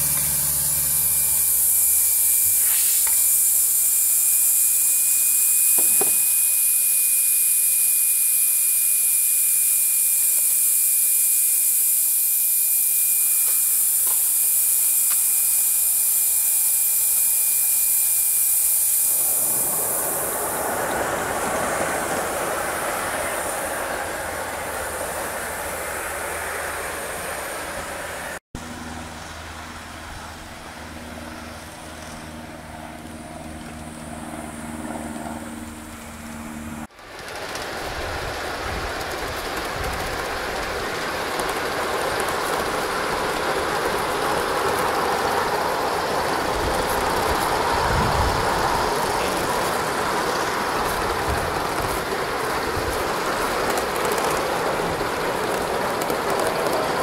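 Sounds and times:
low hum with pitched tones: 0.0 - 21.4
steam locomotive rushing steam: 0.0 - 28.4, 34.6 - 57.0
wheels rolling on rails: 0.0 - 28.4, 31.8 - 57.0.

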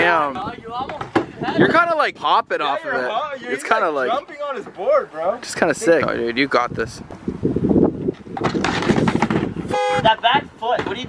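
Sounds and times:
knocks on ramp: 8.4 - 9.5
short horn blast: 9.7 - 10.2.

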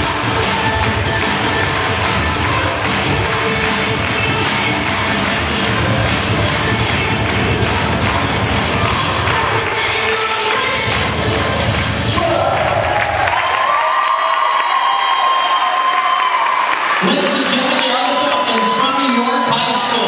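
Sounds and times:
music with heavy bass: 0.0 - 10.0, 10.6 - 12.5
crowd cheering: 12.1 - 20.0.

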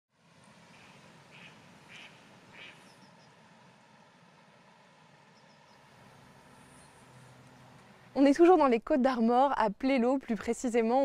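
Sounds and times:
short animal calls: 0.8 - 3.3.

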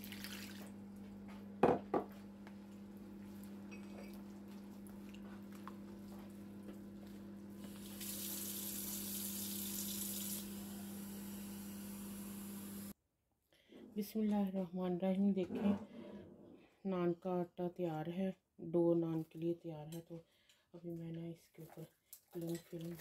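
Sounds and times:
hands mixing wet dough: 2.1 - 7.8, 21.0 - 23.0.

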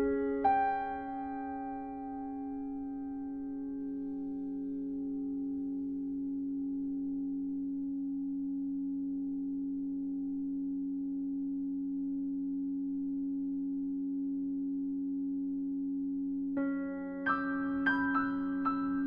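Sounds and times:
sustained piano string drone: 0.0 - 7.4, 16.6 - 19.0.

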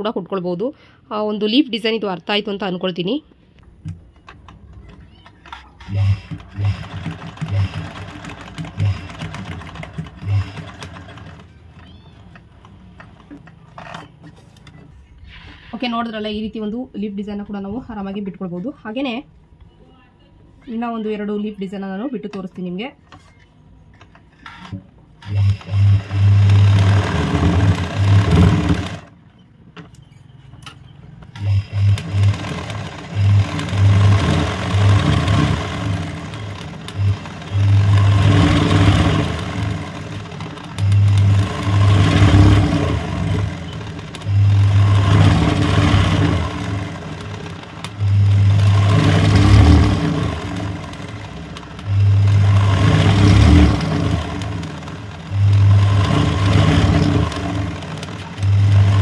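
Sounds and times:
sewing machine running: 4.2 - 14.8, 24.4 - 29.2, 31.3 - 59.0.

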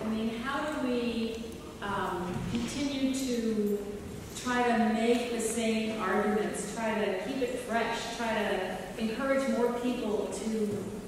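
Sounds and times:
woman talking into a microphone: 0.0 - 11.0.

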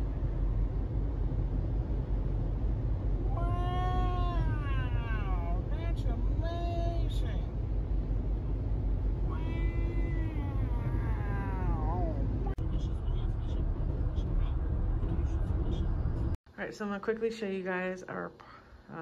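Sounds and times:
car road noise: 0.0 - 16.4
drawn-out meow-like calls: 9.3 - 12.2.

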